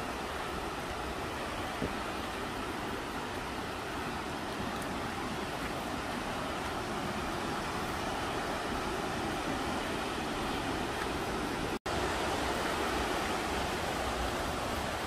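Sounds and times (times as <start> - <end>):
waterfall rushing: 0.0 - 15.0.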